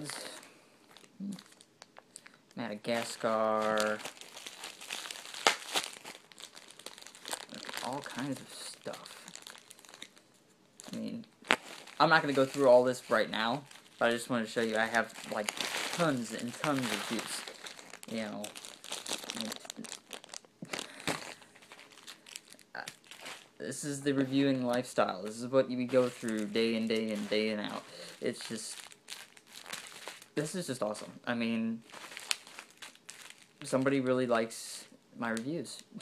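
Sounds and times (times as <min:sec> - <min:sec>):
plastic packing crinkling: 0:00.0 - 0:31.0, 0:31.7 - 0:34.0.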